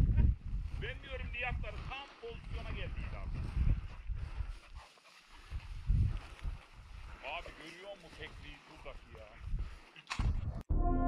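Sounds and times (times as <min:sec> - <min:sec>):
wind buffeting microphone: 0:00.0 - 0:04.8, 0:05.4 - 0:07.2, 0:09.4 - 0:10.7.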